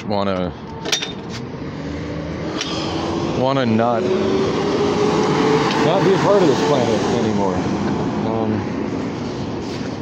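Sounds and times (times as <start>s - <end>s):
road noise rushing: 0.0s - 10.0s
vehicle engine approaching: 1.3s - 10.0s.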